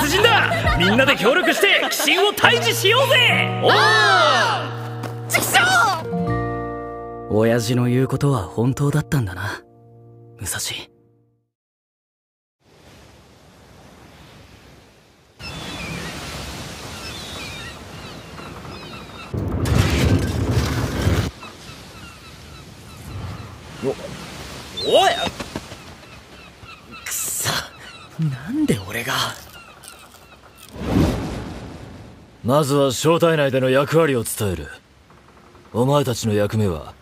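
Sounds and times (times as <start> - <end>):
sea waves breaking: 0.0 - 6.0, 12.6 - 32.5
gulls crying: 0.0 - 6.1, 21.4 - 30.7.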